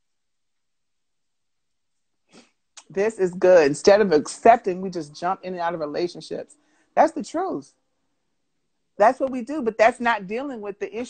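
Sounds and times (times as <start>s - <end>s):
woman's voice: 2.8s - 7.7s, 9.0s - 11.0s
faint breath: 6.5s - 7.0s.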